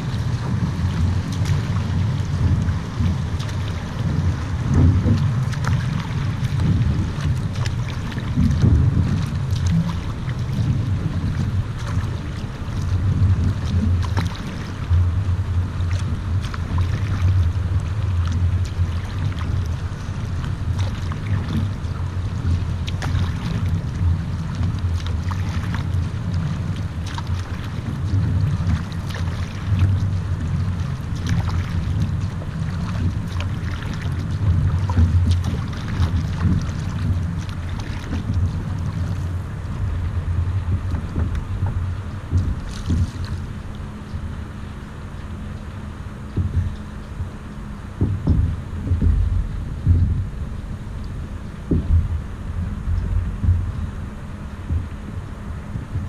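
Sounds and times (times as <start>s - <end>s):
paddle splashing in water: 0.0s - 56.0s
wind rumbling on microphone: 0.0s - 56.0s.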